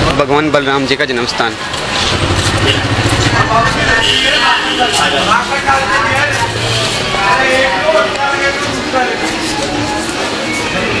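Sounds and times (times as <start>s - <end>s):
background voices talking: 0.0s - 11.0s.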